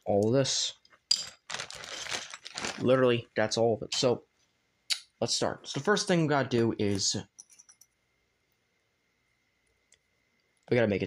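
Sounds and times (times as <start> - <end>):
plastic bricks rattling: 1.1 - 2.9
person speaking: 2.6 - 4.2, 5.2 - 7.4.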